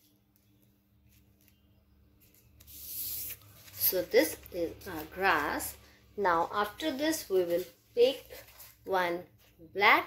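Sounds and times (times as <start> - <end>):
hand rubbing over paper: 2.2 - 4.0.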